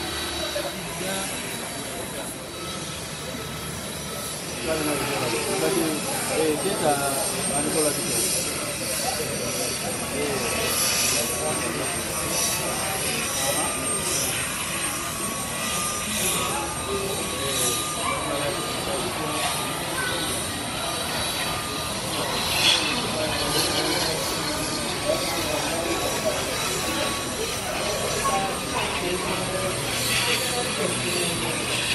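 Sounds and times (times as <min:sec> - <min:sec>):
jet engines running: 0:00.0 - 0:31.9
people talking: 0:00.0 - 0:31.9.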